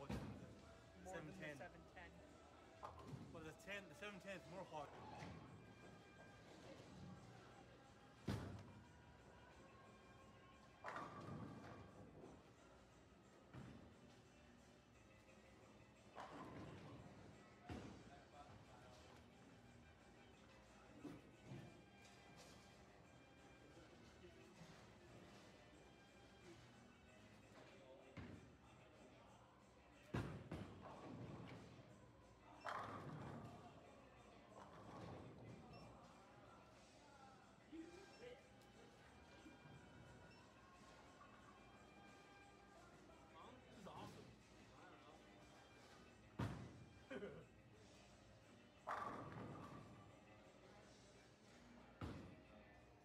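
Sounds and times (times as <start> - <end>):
background music: 0.0 - 53.0.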